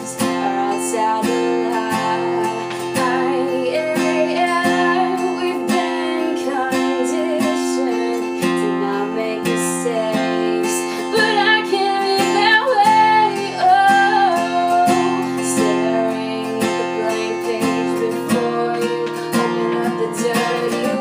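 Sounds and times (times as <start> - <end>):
acoustic guitar strumming: 0.0 - 21.0
woman singing: 0.0 - 21.0.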